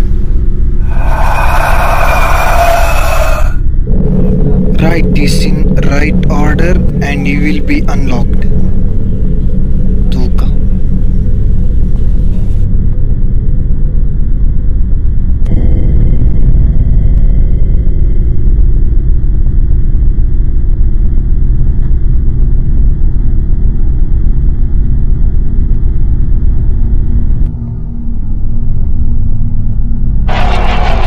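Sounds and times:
low rumbling drone: 0.0s - 31.0s
thin high hum: 0.0s - 31.0s.

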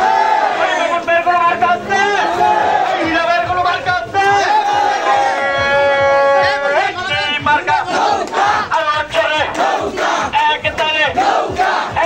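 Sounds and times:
crowd of men chanting: 0.0s - 12.0s.

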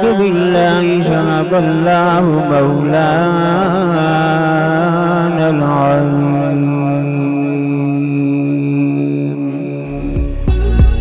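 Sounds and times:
man reciting a long note: 0.0s - 11.0s
instrumental music with sharp beats: 9.9s - 11.0s.

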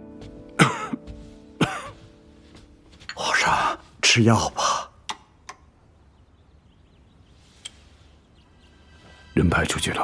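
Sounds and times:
man coughing: 0.6s - 2.0s.

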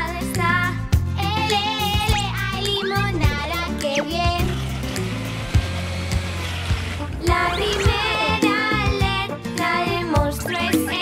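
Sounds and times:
children's music with bass line: 0.0s - 11.0s.

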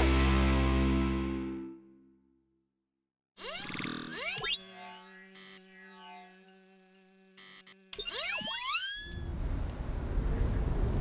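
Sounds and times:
cartoon whistle tones sliding upward: 8.0s - 9.2s
rushing sandstorm wind: 9.2s - 11.0s.

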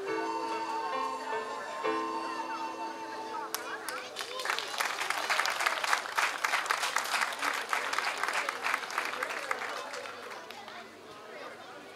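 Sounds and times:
audience applauding: 3.5s - 10.8s.

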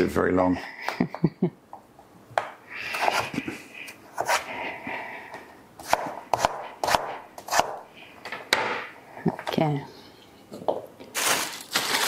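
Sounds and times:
knife chopping on wooden board: 5.8s - 7.8s.

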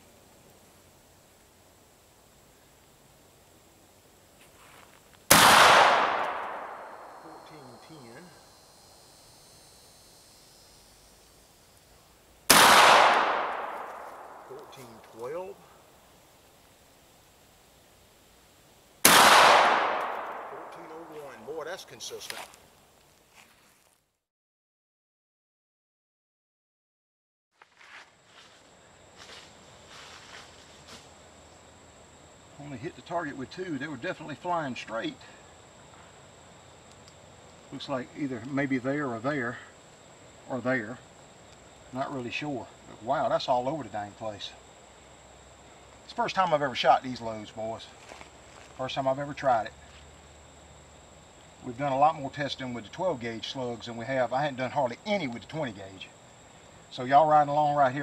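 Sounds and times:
footsteps crunching on ground: 4.3s - 5.3s, 13.5s - 15.6s, 20.0s - 24.1s, 27.5s - 31.2s, 47.6s - 49.0s, 49.7s - 50.3s
shotgun shots with echo: 5.3s - 7.2s, 12.5s - 14.8s, 19.0s - 21.2s
high-pitched insect drone: 6.8s - 12.2s.

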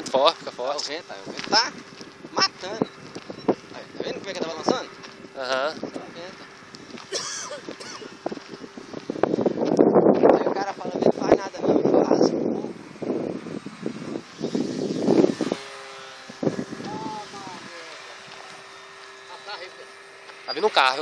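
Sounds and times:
voices: 0.0s - 8.8s, 16.4s - 21.0s
wind noise: 0.0s - 18.9s
model plane motor: 0.0s - 21.0s.

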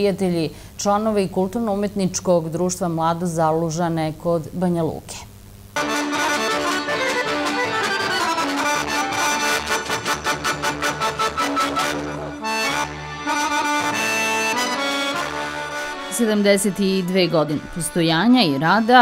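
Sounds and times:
accordion folk dance music: 5.8s - 19.0s.

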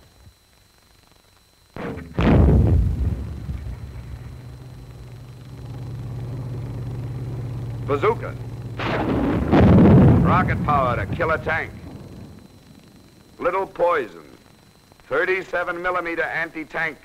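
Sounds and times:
low steady drone: 1.7s - 16.4s
mortar boom: 1.8s - 5.1s, 8.8s - 12.3s.

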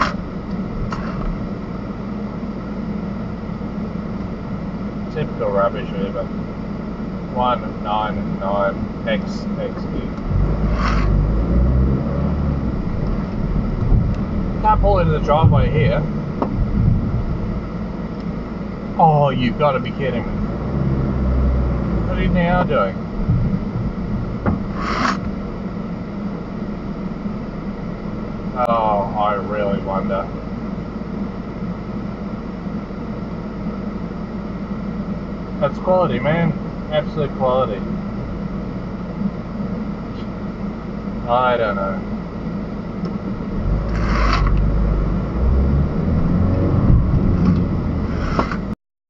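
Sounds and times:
car engine and cabin hum: 0.0s - 48.8s
short hissing: 10.6s - 11.2s, 24.7s - 25.2s
click: 47.4s - 47.7s.

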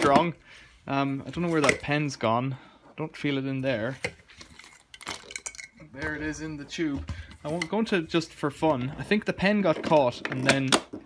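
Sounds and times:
plastic hose handled: 1.2s - 2.1s, 3.9s - 8.0s, 8.6s - 11.0s.

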